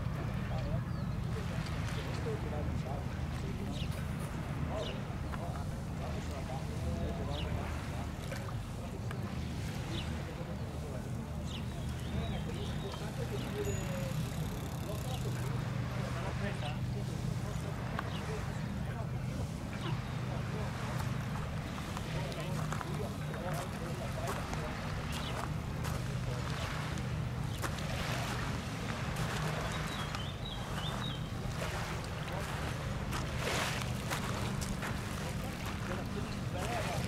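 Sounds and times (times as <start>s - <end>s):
distant voices talking: 0.0s - 37.0s
low engine hum: 0.0s - 37.0s.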